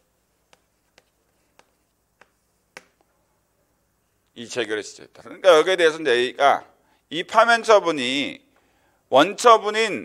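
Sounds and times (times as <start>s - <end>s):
chalk clicking on blackboard: 0.4s - 3.1s.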